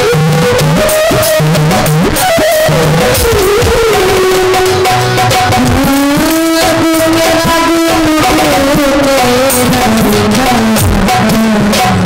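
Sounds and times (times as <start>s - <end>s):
dhol drum beats: 0.0s - 12.0s.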